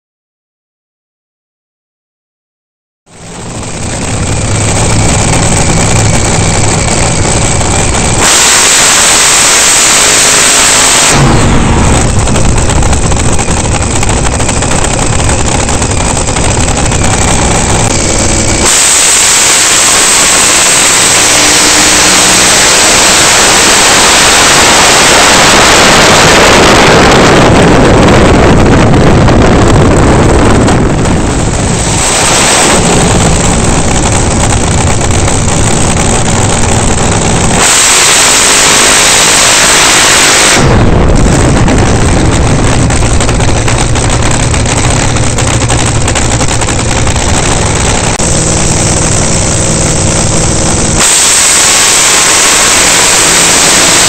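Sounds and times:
dragster engine at full throttle: 3.1 - 54.0.

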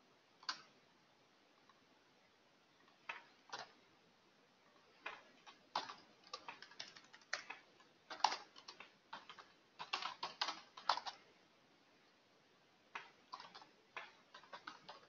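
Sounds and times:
computer keyboard keystrokes: 0.4 - 0.7, 2.9 - 3.8, 5.0 - 11.2, 12.9 - 15.0.

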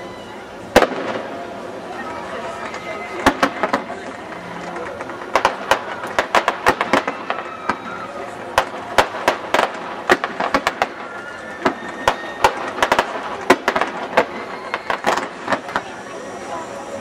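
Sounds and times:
fireworks bursting with bangs: 0.6 - 17.0.

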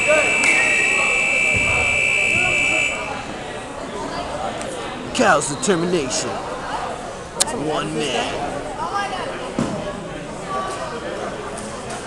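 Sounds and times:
scoreboard buzzer long tone: 0.0 - 3.3
faint voices: 0.0 - 12.0.

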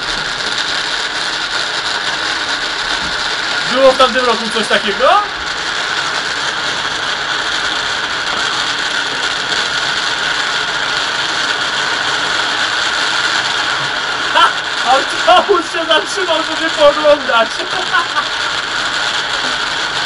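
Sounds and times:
distant fireworks crackling: 0.0 - 20.0.

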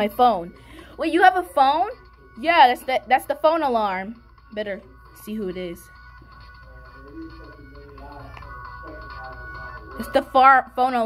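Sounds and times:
musical phone ringtone: 0.0 - 11.0.

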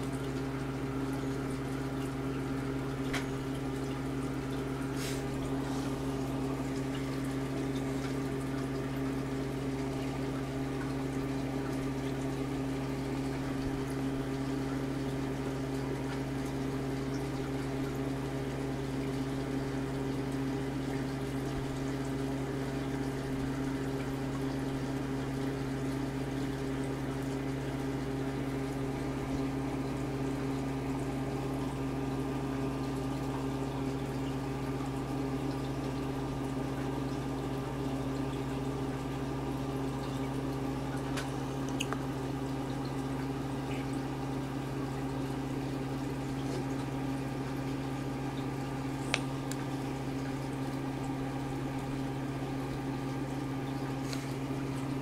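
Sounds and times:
air pump humming: 0.0 - 31.6, 37.4 - 55.0
bubbling water gurgling: 0.0 - 55.0.

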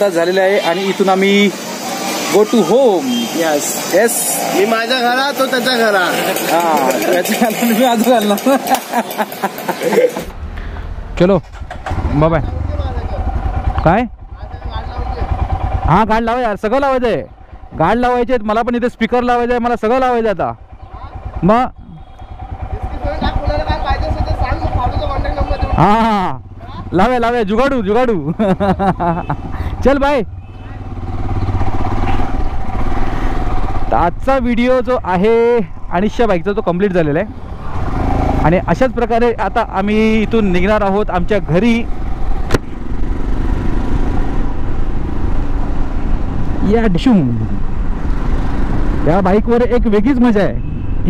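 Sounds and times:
road noise: 0.0 - 51.0
motorcycle engine idling: 4.9 - 46.4.

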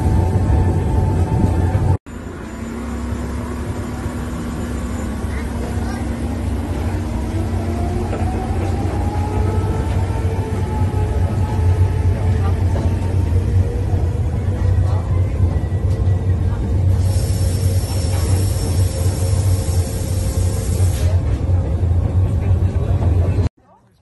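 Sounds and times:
railcar running with low rumble: 0.0 - 23.6.

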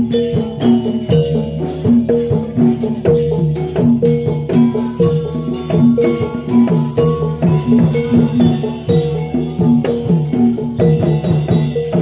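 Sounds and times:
drum and percussion strokes: 0.0 - 12.0
metallophones playing pattern: 0.0 - 12.0.

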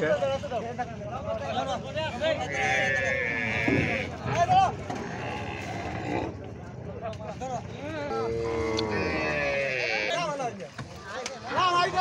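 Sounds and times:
men's voices: 0.0 - 12.0
cow bawling: 2.4 - 6.4, 8.1 - 10.3.

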